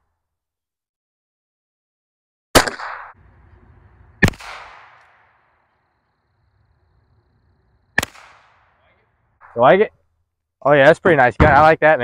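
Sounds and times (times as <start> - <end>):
rifle shots with echo: 2.6 - 5.6, 7.8 - 9.6.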